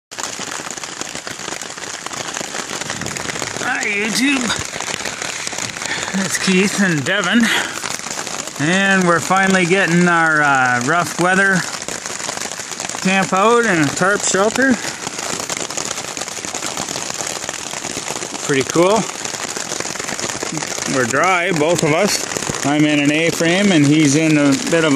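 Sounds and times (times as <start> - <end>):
heavy rain on a tarp: 0.1 - 24.9
man speaking: 3.6 - 4.6, 6.0 - 7.7, 8.6 - 11.7, 13.0 - 14.8, 18.5 - 19.1, 20.5 - 24.9.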